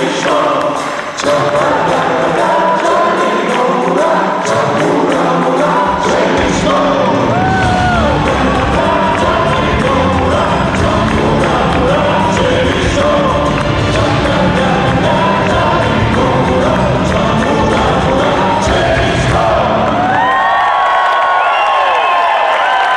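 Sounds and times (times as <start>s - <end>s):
rock band with singers: 0.0s - 20.6s
audience cheering and whooping: 7.1s - 9.2s, 19.6s - 22.9s.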